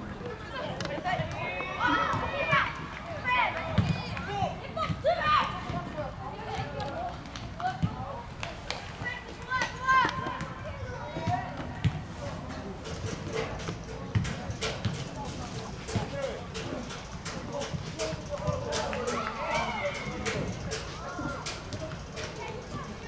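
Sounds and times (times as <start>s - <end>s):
young players shouting: 1.3s - 5.8s, 18.4s - 21.5s.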